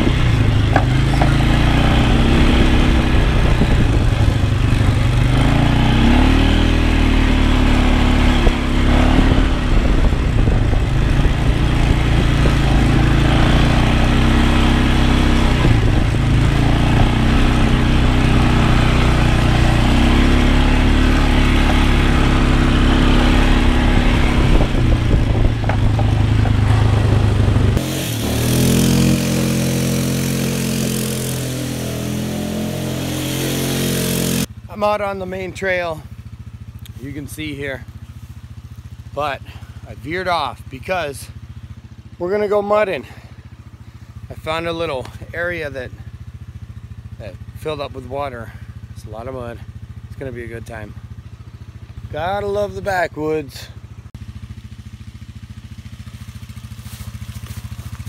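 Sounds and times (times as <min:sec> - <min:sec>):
atv engine revving: 0:00.0 - 0:58.0.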